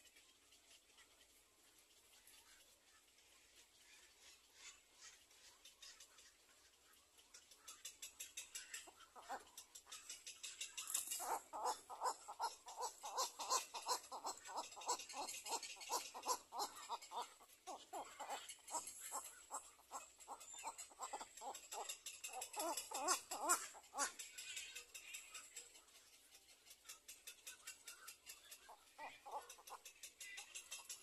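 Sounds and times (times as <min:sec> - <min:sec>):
cormorant calling: 0:08.5 - 0:10.2, 0:10.8 - 0:24.4, 0:28.7 - 0:29.9.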